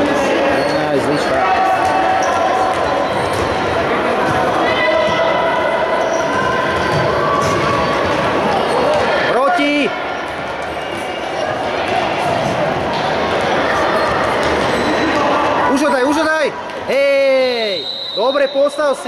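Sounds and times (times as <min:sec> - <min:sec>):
people shouting: 0:04.0 - 0:10.1.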